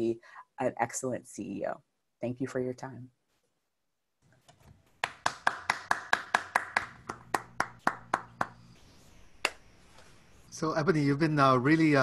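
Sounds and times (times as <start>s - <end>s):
person clapping: 5.0s - 8.6s.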